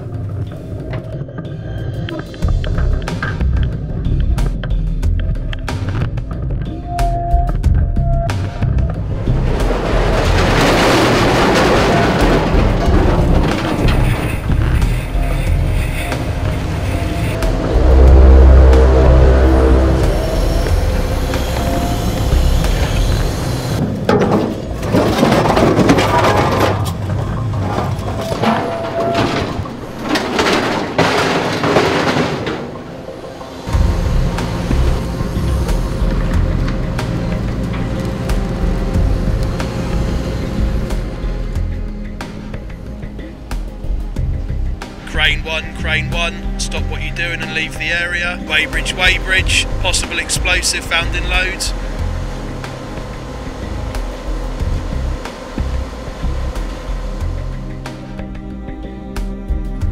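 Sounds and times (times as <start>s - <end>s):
background music: 0.0s - 59.9s
low machinery drone: 0.0s - 59.9s
scrap metal crashing and clattering: 8.9s - 42.7s
heavy low boom: 15.4s - 23.4s.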